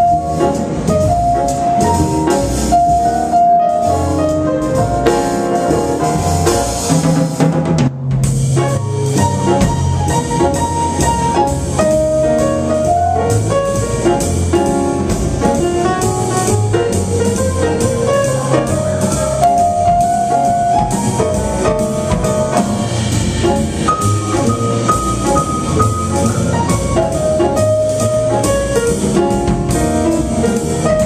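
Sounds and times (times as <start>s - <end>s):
drum kit cymbals: 0.0s - 31.0s
grand piano chords and melody: 0.0s - 31.0s
plucked upright bass: 0.0s - 31.0s.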